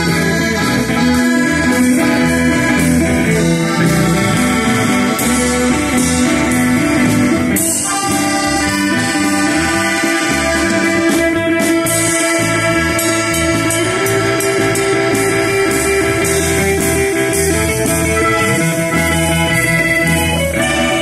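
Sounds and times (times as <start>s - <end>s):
instrumental rock band: 0.0s - 21.0s.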